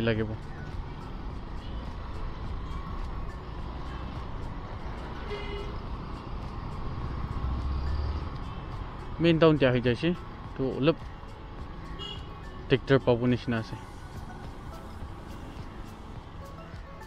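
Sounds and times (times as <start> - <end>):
scooter engine hum: 0.0 - 12.5
road and wind noise: 0.0 - 17.0.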